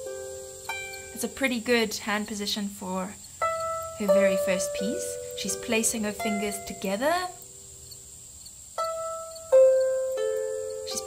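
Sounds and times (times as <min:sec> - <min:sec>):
harp notes plucked: 0:00.0 - 0:07.6, 0:08.8 - 0:11.0.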